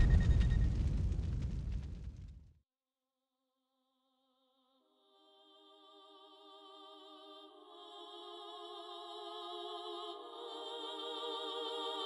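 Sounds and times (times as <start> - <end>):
deep boom with crackle: 0.0 - 2.6.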